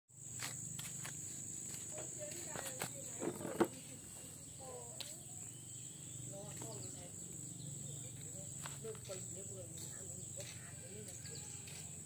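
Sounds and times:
sandal footsteps on concrete: 0.2 - 4.3, 8.2 - 12.0.

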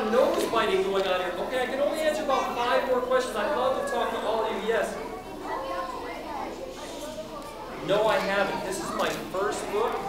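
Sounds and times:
adult speech: 0.0 - 10.0
stir of children in a room: 0.0 - 10.0
child asking a question: 4.8 - 10.0.

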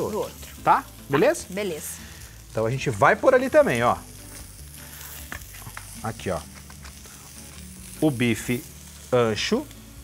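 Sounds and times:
beef sizzling on grill: 0.0 - 10.0.

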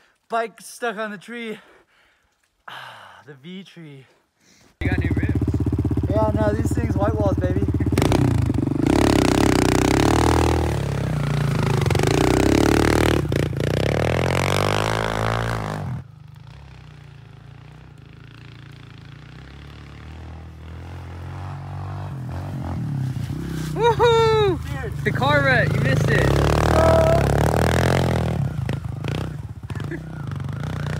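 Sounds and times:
motorbike engine revving: 4.8 - 30.9.

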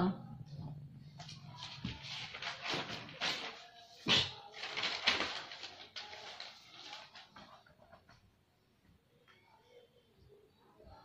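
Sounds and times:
notebook pages flipping: 1.2 - 3.9, 4.5 - 8.1.

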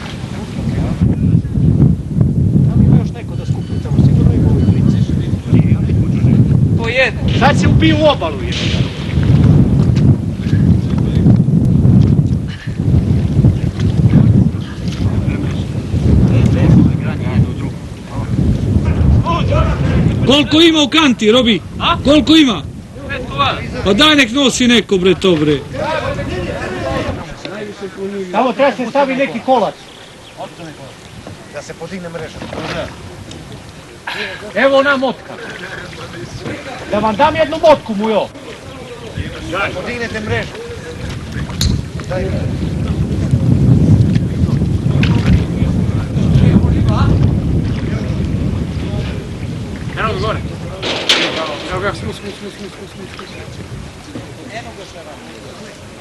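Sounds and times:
water splashing: 0.0 - 1.0, 7.1 - 11.2, 12.0 - 56.0
wind buffeting microphone: 0.0 - 56.0
men shouting: 25.6 - 29.6.

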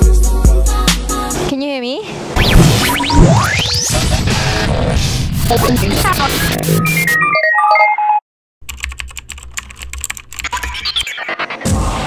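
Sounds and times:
music with singing: 0.0 - 1.5
rapid keyboard clicking: 8.6 - 10.9.

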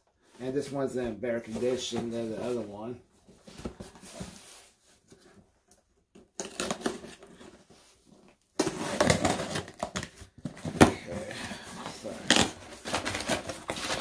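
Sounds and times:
box cutter slitting tape: 6.4 - 7.2, 8.6 - 10.0.

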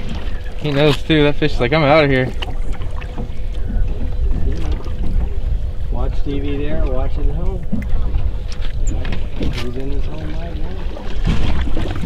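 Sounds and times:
boat noise: 0.0 - 12.0
wind on microphone: 0.0 - 12.0.

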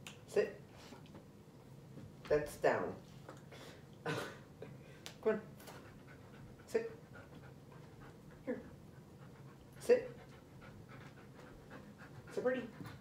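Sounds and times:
dog panting: 5.6 - 13.0.

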